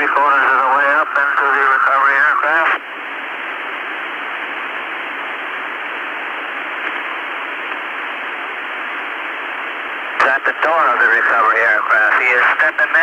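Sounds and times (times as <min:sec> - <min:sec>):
radio channel hiss: 0:00.0 - 0:13.0.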